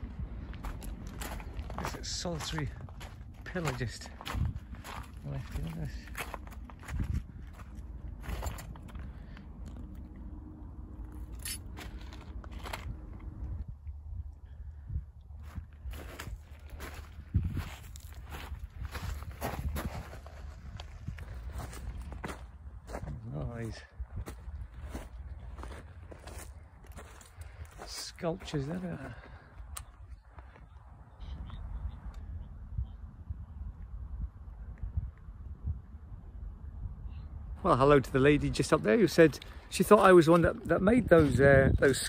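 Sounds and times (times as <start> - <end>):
low rumble: 0.0 - 27.9
footsteps crunching on pebbles: 0.4 - 9.4, 11.3 - 13.4, 15.4 - 29.5.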